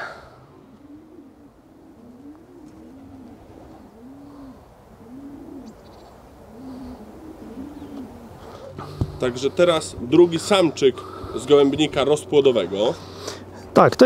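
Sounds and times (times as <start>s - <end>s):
pigeon cooing: 0.0s - 13.5s.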